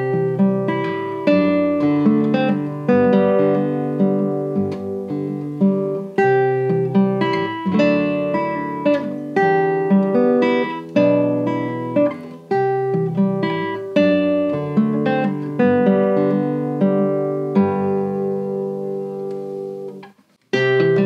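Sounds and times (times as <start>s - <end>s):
classical guitar playing slowly: 0.0s - 21.0s.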